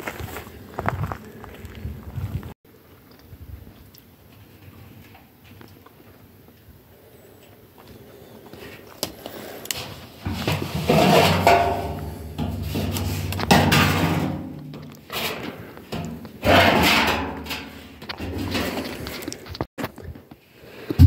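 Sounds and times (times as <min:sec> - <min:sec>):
metal barrel scraping and rattling: 0:09.8 - 0:19.4
metal barrel bumps: 0:10.2 - 0:18.9.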